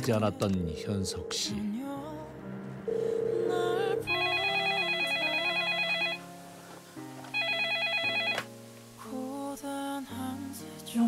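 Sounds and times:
soft background music: 0.0 - 11.0
telephone electronic warbling ring: 2.9 - 6.2, 7.4 - 8.4.

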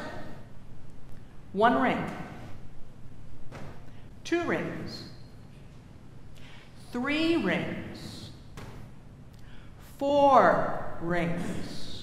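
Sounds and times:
voice echo: 0.0 - 2.8, 3.4 - 5.8, 6.4 - 12.0
low room hum: 0.0 - 12.0.

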